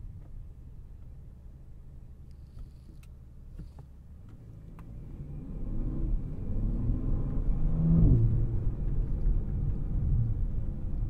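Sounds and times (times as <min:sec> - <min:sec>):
car engine accelerating: 0:04.3 - 0:11.0.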